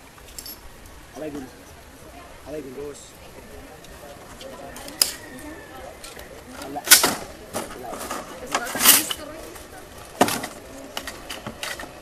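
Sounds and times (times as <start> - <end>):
faint background voices: 1.0 - 12.0.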